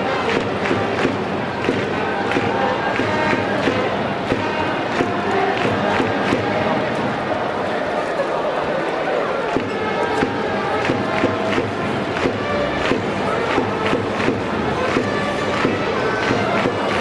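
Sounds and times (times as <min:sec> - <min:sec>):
music with brassy notes: 0:00.0 - 0:07.4, 0:09.5 - 0:17.0
stadium crowd murmuring: 0:00.0 - 0:17.0.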